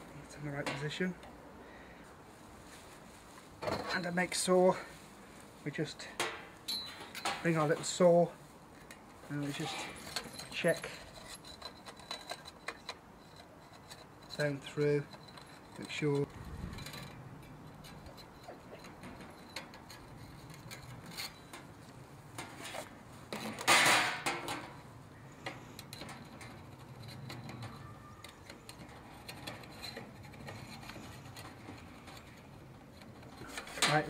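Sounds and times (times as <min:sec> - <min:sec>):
light metal clinks and scrapes: 0:02.6 - 0:34.0.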